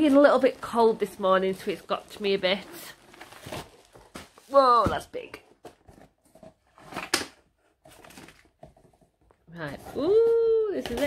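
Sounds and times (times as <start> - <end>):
cardboard box scraping: 0.7 - 4.8.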